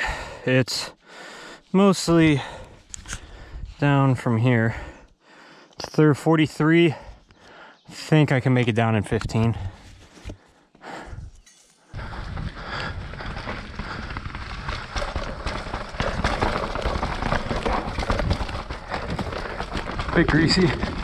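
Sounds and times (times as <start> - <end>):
bike tyres rumbling on rocky dirt: 11.9 - 21.0.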